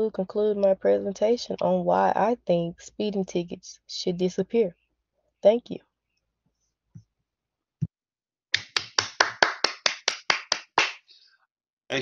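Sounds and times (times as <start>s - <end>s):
person clapping: 8.6s - 11.1s.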